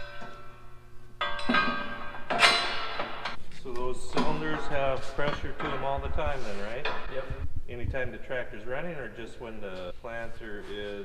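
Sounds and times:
sharp metallic clanks: 0:00.0 - 0:03.4.

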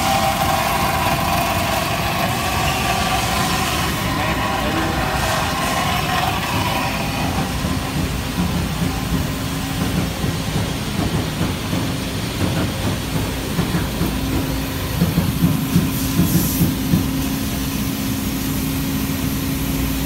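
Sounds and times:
machine whine: 0:00.0 - 0:09.8
shop machinery rumbling: 0:00.0 - 0:17.4.

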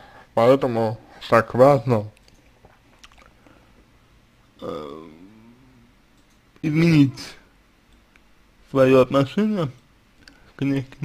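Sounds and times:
man saying hesitant uhh: 0:04.6 - 0:05.9, 0:06.6 - 0:07.5.

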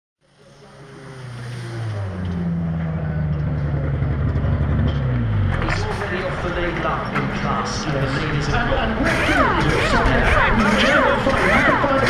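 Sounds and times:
race car engine running: 0:00.2 - 0:12.0.

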